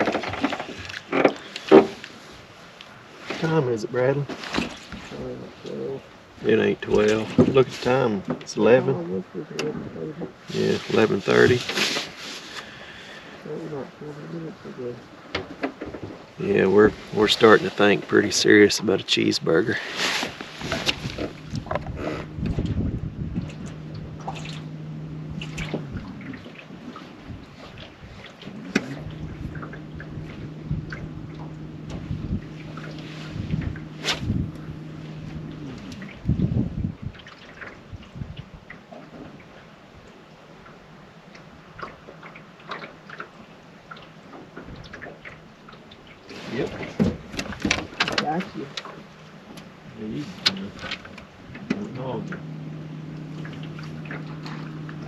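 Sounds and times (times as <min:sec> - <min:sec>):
trolling motor humming: 0:00.0 - 0:55.0
water slopping against boat: 0:00.0 - 0:55.0
fish splashing: 0:19.8 - 0:36.4, 0:37.1 - 0:39.0, 0:52.4 - 0:55.0.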